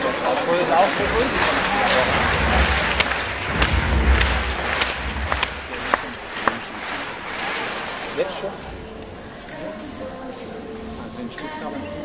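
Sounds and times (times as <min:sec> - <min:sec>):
crowd cheering and shouting: 0:00.6 - 0:09.5
sharp clacks: 0:00.7 - 0:09.6.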